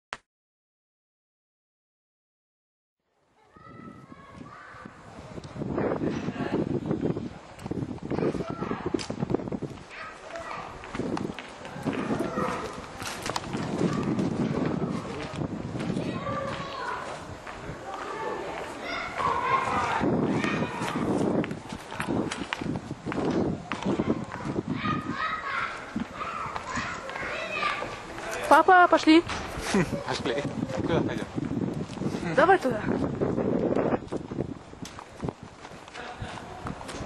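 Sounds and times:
indistinct voices talking: 9.8s - 34.1s.

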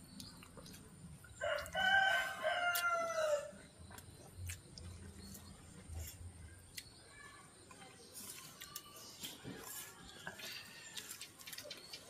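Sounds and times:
rooster crowing: 1.4s - 3.6s.

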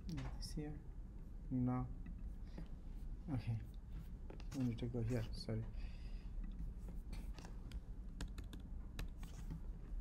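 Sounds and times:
low steady hum: 0.0s - 10.0s
computer keys tapping: 7.4s - 9.4s.

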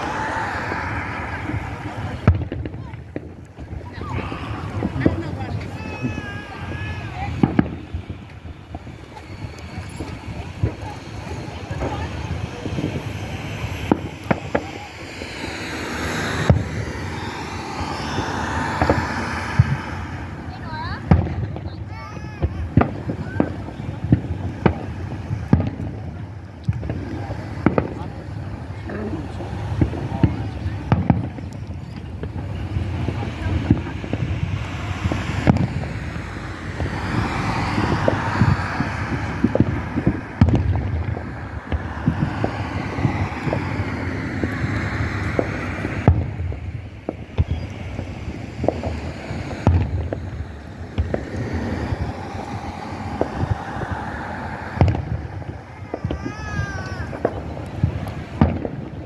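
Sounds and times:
dense rushing noise: 0.0s - 59.0s.

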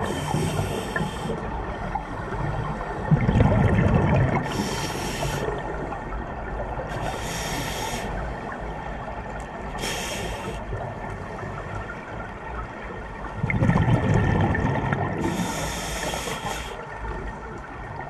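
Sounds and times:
regulator hissing inhalations: 0.0s - 1.4s, 4.5s - 5.6s, 6.9s - 8.2s, 9.8s - 10.6s, 15.2s - 16.9s
exhaled bubbles rushing: 2.4s - 4.8s, 13.0s - 15.6s.

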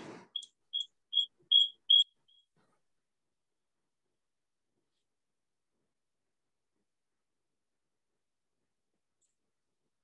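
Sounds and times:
short high electronic beeps: 0.4s - 2.4s.

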